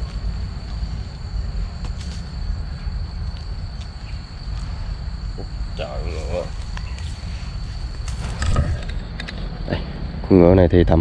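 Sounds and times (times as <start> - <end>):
high-pitched insect trill: 0.0 - 11.0
low rumble: 0.0 - 11.0.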